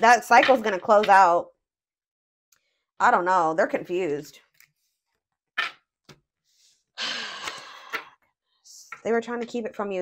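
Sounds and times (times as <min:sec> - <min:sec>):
person sighing: 0:07.0 - 0:08.1.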